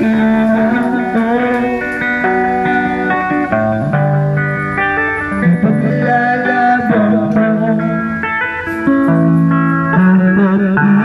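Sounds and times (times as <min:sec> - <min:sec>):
electric guitar melody: 0:00.0 - 0:11.0.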